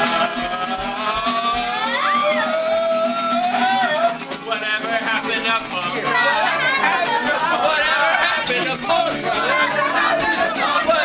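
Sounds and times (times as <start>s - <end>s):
hand percussion jingling: 0.0s - 11.0s
live folk-punk band: 0.0s - 11.0s
voices singing and shouting: 0.0s - 11.0s.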